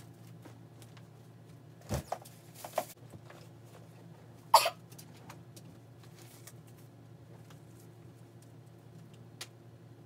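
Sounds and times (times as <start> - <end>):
person coughing: 4.5 - 4.8.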